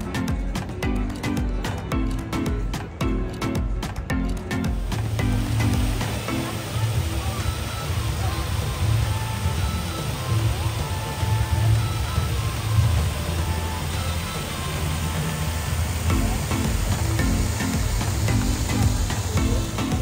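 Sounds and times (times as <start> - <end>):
fountain water splashing: 0.0 - 20.0
music with a beat: 0.0 - 20.0.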